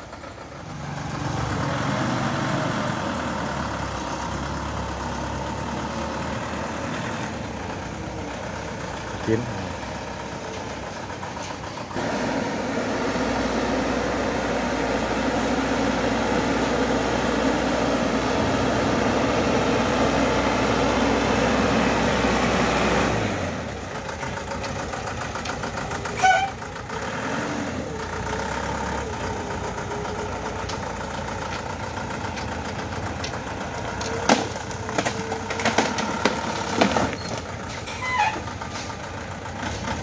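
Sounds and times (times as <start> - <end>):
truck engine driving slowly: 0.0 - 40.0.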